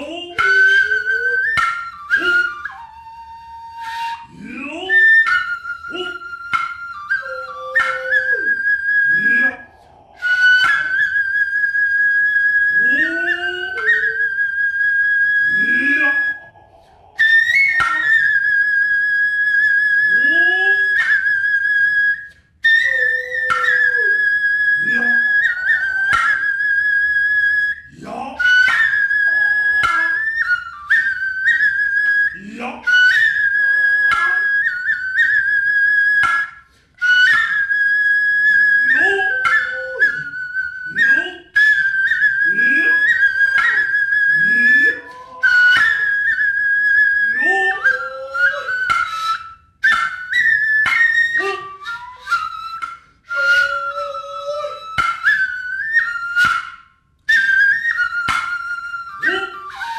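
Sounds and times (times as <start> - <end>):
bamboo flute long high notes: 0.0 - 59.9.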